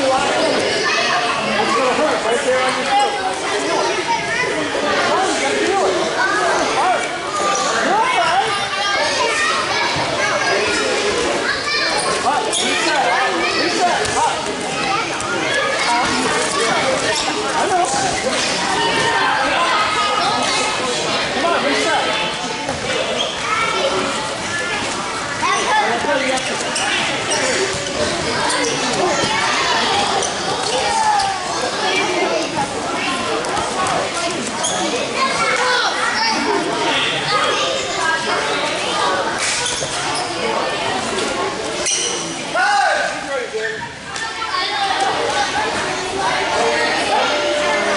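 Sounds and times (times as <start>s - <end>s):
children chattering: 0.0s - 47.9s.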